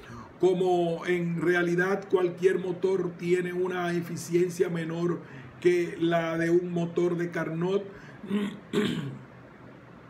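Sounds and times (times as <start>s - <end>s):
man clearing his throat: 8.2s - 9.3s.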